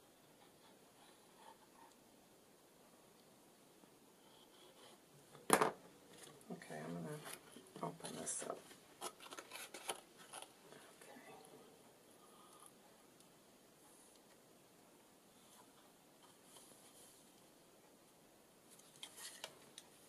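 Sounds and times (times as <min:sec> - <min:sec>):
card rustling and sliding: 0:09.0 - 0:10.5.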